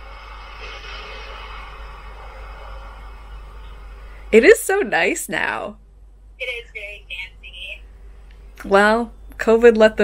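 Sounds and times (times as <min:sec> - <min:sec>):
muffled city noise through phone: 0:00.0 - 0:10.0.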